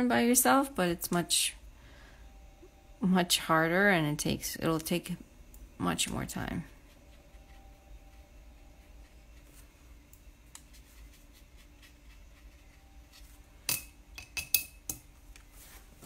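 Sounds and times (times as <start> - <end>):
faint hum: 0.0 - 16.0.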